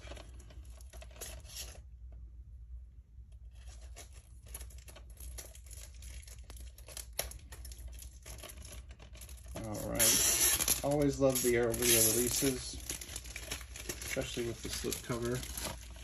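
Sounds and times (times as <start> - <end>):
plastic wrap crinkling and tearing: 0.0 - 1.8, 3.4 - 16.0
plastic wrap snapping: 3.9 - 16.0.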